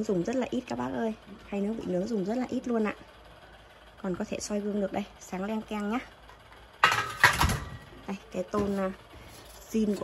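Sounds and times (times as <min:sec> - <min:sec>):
metal grill tray clattering: 0:06.8 - 0:07.9.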